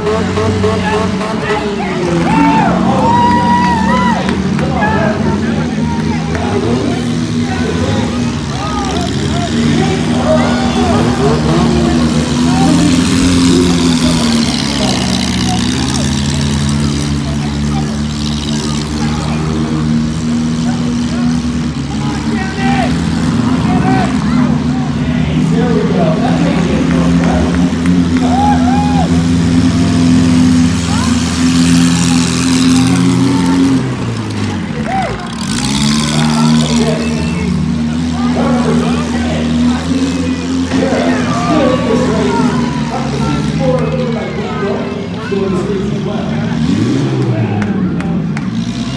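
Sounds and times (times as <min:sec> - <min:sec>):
car engines droning: 0:00.0 - 0:48.9
voices shouting: 0:00.0 - 0:48.9.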